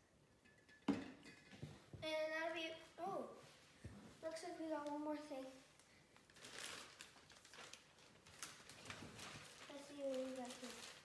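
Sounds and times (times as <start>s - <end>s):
plastic bag crinkling: 5.8s - 11.0s.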